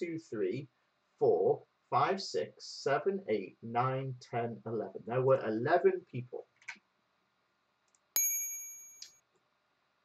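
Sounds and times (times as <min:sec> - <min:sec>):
bright electronic ding: 0:08.2 - 0:09.2.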